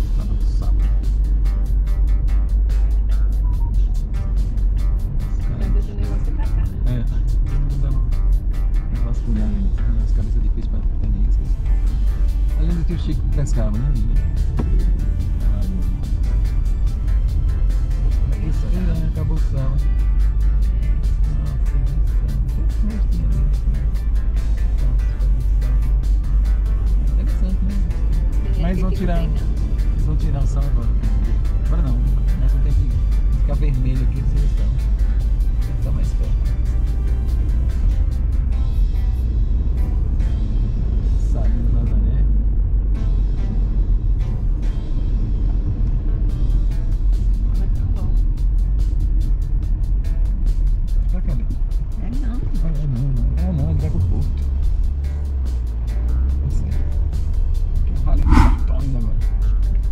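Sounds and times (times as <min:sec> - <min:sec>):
background music with singing: 0:00.0 - 0:41.4
road noise: 0:00.0 - 0:59.8
car engine rumble: 0:00.0 - 0:59.9.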